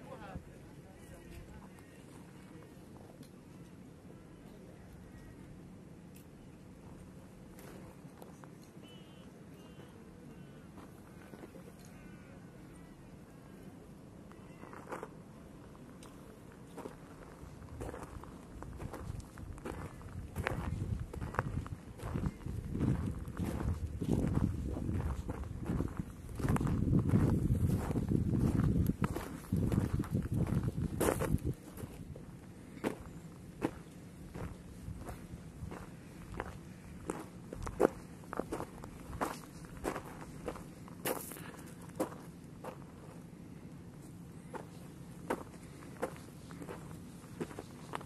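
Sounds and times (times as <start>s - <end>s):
footsteps on gravel trail: 14.5s - 15.2s, 16.0s - 43.2s, 44.0s - 48.0s.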